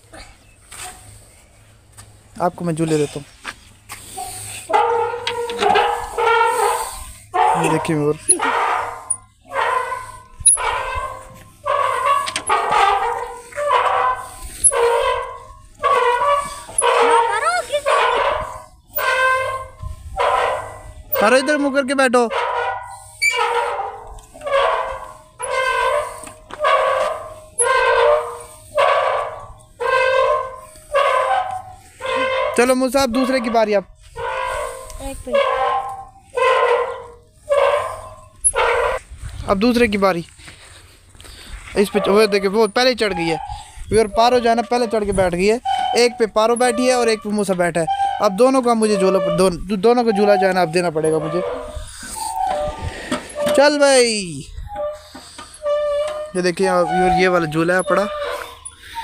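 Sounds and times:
metal swing squeaking: 0.0s - 59.0s
monkey high-pitched calls: 8.2s - 15.2s.

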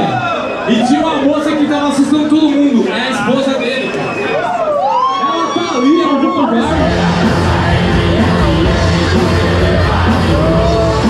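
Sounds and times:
background voices: 6.6s - 11.0s.

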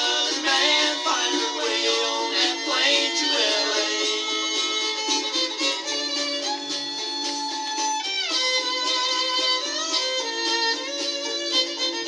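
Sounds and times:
fiddle playing lead line: 0.0s - 12.0s.

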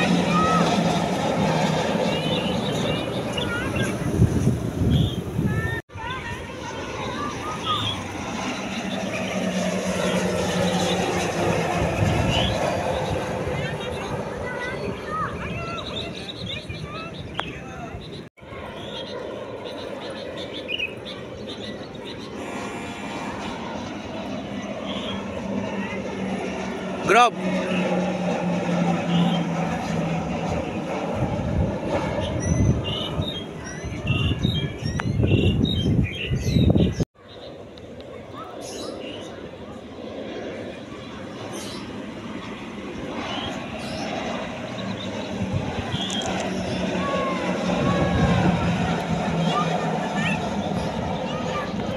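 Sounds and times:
gusty low rumbling: 0.0s - 6.6s, 22.2s - 37.1s, 41.9s - 49.6s
turboprop aircraft flying past: 0.0s - 51.9s.

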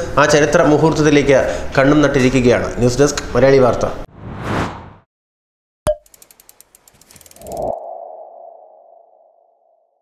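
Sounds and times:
ticking clicks: 5.9s - 7.8s.

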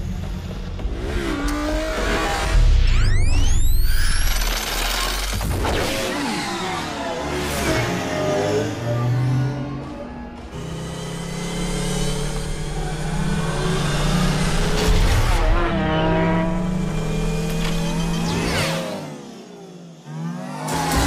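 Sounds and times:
music: 0.0s - 4.1s
electronic engine hum with whines: 0.0s - 21.0s.

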